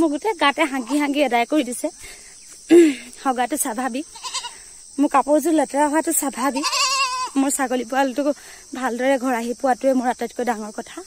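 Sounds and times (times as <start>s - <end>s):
goat bleating: 4.1s - 4.6s, 6.5s - 7.4s.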